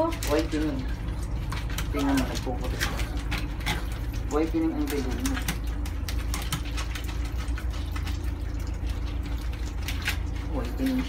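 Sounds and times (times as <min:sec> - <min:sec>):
low machine hum: 0:00.0 - 0:11.0
wet squishing of lathered fur: 0:00.0 - 0:11.0.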